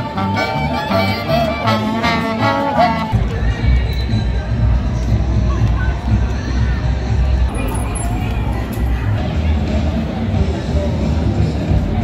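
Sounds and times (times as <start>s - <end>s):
jazz band playing: 0.0s - 3.2s.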